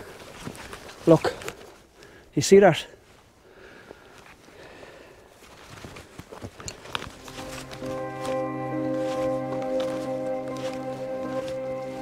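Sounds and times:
footsteps through dry grass: 0.0 - 2.0, 3.0 - 12.0.

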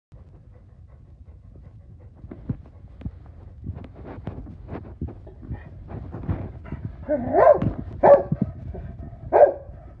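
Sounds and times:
dog barking: 7.1 - 8.4, 9.3 - 9.7.

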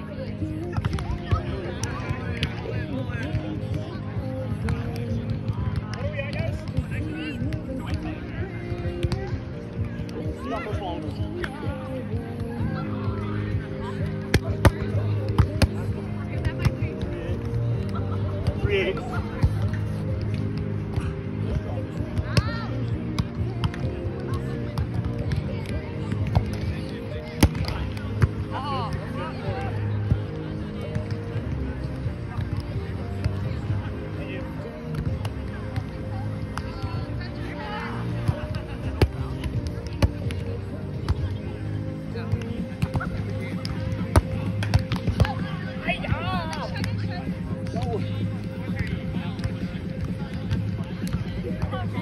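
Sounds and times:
music: 0.0 - 52.0
hands slapping volleyball: 42.3 - 45.4.

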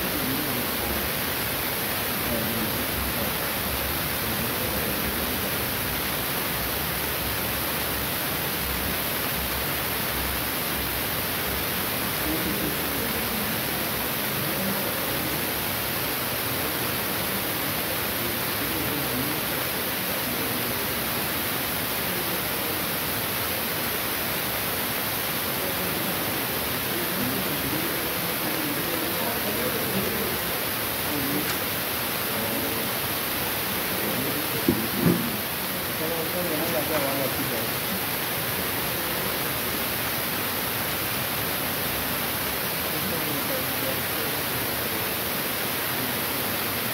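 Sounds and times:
faint voices: 0.0 - 46.9
loud hiss: 0.0 - 46.9.

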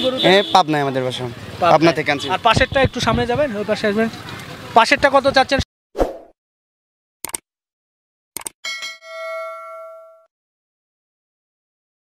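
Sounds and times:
metallic bell ding: 8.7 - 10.3.

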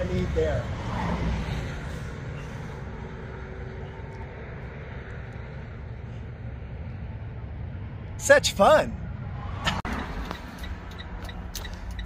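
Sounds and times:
heavy vehicle rumble: 0.0 - 12.0.

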